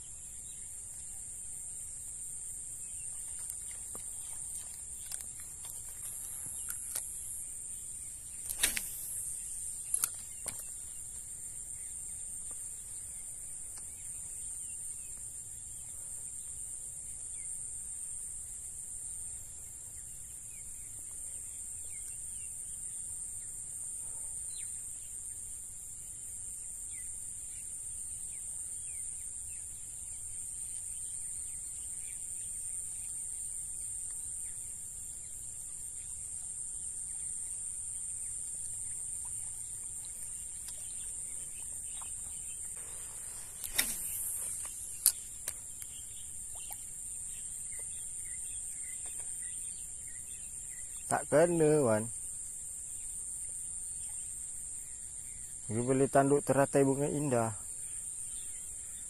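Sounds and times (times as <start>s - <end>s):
faint insect chirps: 0.0s - 59.0s
insect chorus drone: 0.0s - 59.0s.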